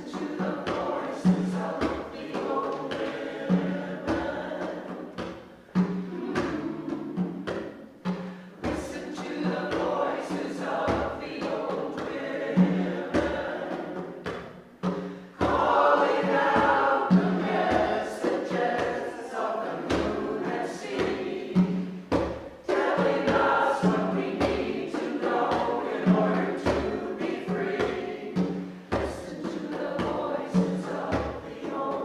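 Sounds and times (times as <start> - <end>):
low beats: 0.0 - 32.0
mixed choir singing: 0.0 - 32.0.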